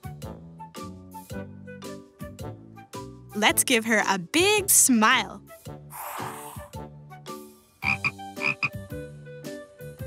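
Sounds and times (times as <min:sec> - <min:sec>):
soft background music: 0:00.0 - 0:10.0
frog croaking: 0:07.8 - 0:08.8.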